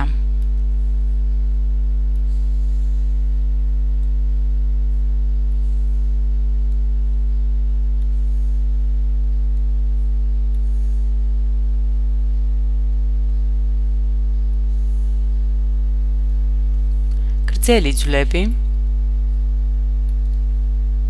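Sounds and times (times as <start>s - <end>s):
loud low electrical hum: 0.0s - 21.0s.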